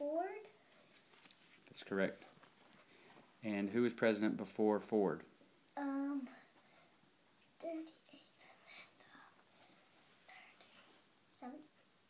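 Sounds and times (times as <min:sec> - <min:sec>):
child whispering: 0:07.6 - 0:09.5, 0:10.2 - 0:11.7.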